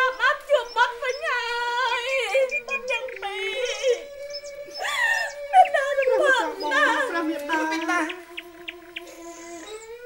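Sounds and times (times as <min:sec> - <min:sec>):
woman wailing: 0:00.0 - 0:08.3
steady held accompaniment note: 0:00.0 - 0:10.0.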